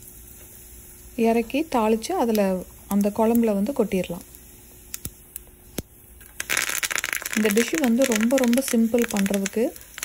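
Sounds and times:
seeds popping in hot oil: 0.0s - 10.0s
loud sputtering sizzle: 5.7s - 10.0s.

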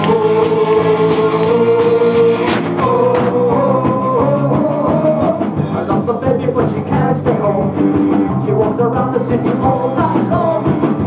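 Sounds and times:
drum beat: 0.0s - 11.0s
live rock band playing: 0.0s - 11.0s.

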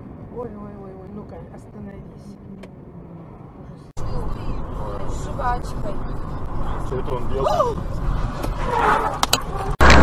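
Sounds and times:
road and engine noise in car: 0.0s - 10.0s.

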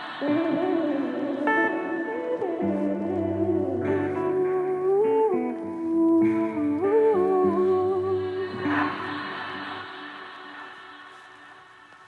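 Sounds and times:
short swelling wash: 0.0s - 4.2s, 8.1s - 12.0s
wordless hummed vocal melody: 0.0s - 11.4s
soft slow instrumental backing: 0.0s - 12.0s.

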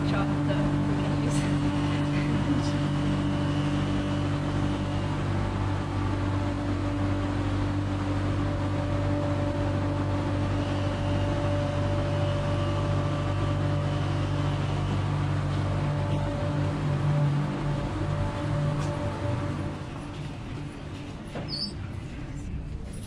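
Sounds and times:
steady machine hum: 0.0s - 23.0s.

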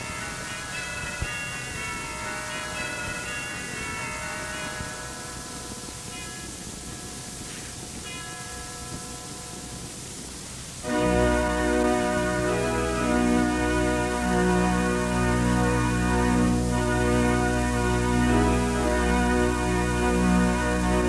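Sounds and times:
tape hiss: 0.0s - 21.0s
pipe organ chords: 10.8s - 21.0s.

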